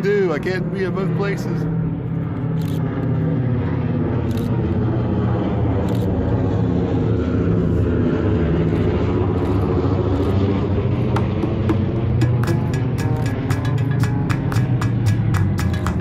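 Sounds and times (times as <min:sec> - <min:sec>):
aircraft piston engines droning: 0:00.0 - 0:16.0.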